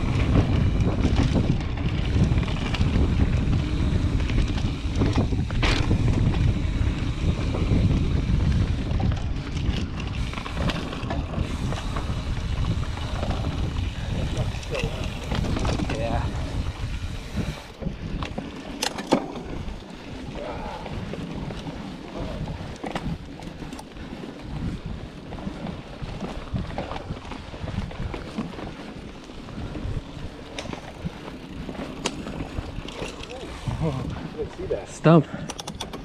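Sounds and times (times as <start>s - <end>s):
bike clicks and rattles: 0.0s - 36.0s
bike tyres rumbling on dirt: 0.0s - 36.0s
wind buffeting microphone: 0.0s - 36.0s.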